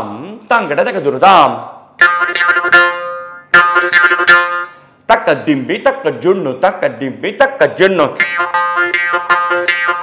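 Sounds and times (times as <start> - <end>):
jaw harp twanging: 8.2 - 10.0.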